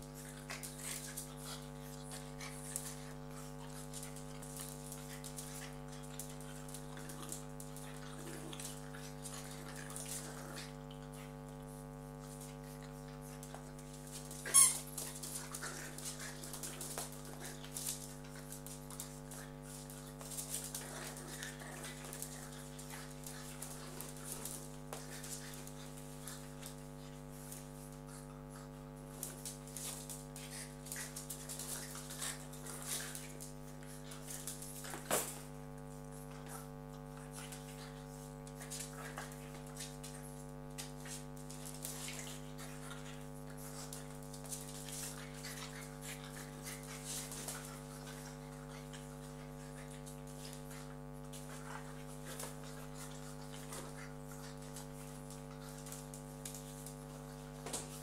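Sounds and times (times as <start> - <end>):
puppies scuffling: 0.0 - 58.0
steady hum: 0.0 - 58.0.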